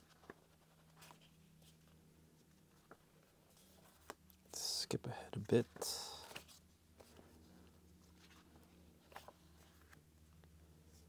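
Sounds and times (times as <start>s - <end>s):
person speaking: 4.5s - 6.4s.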